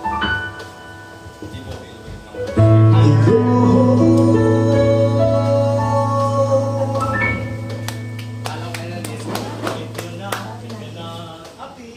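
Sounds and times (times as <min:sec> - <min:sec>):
acoustic guitar chord ringing: 0:02.7 - 0:11.3.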